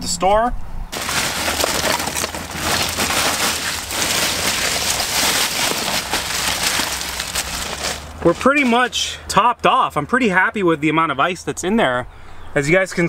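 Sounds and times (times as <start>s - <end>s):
ice cubes clattering: 1.0s - 8.8s.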